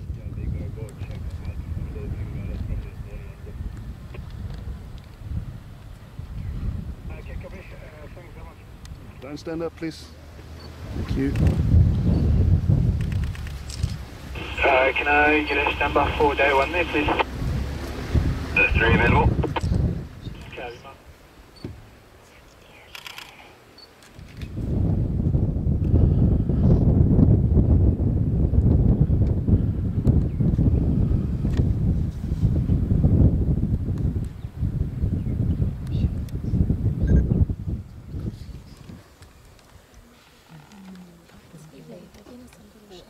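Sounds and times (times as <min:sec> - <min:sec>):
wind buffeting microphone: 0:00.0 - 0:20.8, 0:24.1 - 0:40.2
faint clicks: 0:22.8 - 0:24.5.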